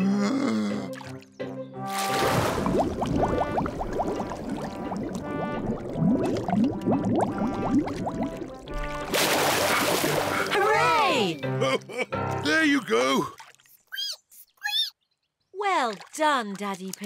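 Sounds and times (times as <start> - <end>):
light background music: 0.0 - 13.3
cartoon water splash: 1.9 - 10.6
underwater bubble bloops: 2.1 - 10.5.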